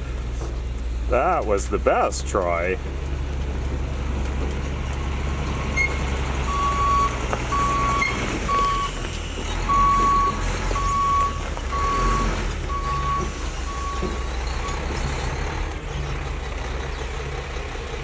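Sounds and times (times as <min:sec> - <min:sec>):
diesel truck engine running: 0:00.0 - 0:18.0
truck reversing alarm beeping: 0:05.0 - 0:15.6.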